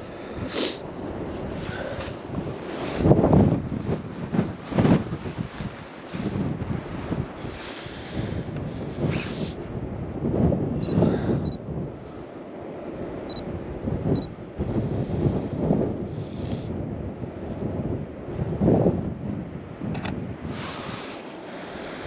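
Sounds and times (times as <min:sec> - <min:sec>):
wind buffeting microphone: 0:00.0 - 0:22.0
sharp click: 0:20.0 - 0:20.2.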